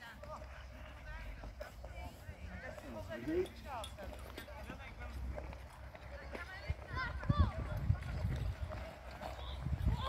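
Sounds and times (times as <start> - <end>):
distant people calling and shouting: 0.0 - 10.0.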